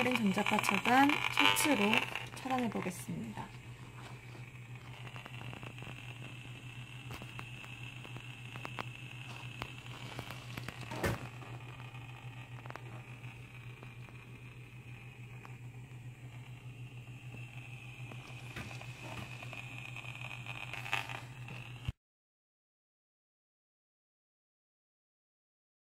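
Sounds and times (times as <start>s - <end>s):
crackling clicks: 0.0s - 22.0s
high meter tone: 0.0s - 22.0s
meter hum: 0.0s - 22.0s.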